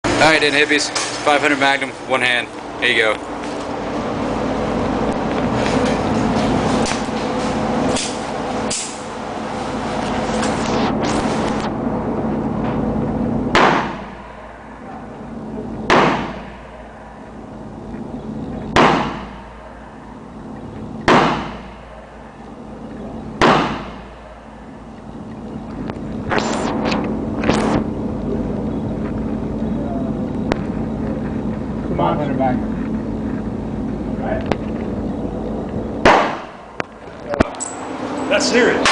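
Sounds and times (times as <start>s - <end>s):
revolver shots echoing indoors: 13.5s - 14.8s, 15.8s - 17.1s, 18.7s - 20.0s, 21.0s - 22.2s, 23.4s - 24.4s, 36.0s - 36.7s.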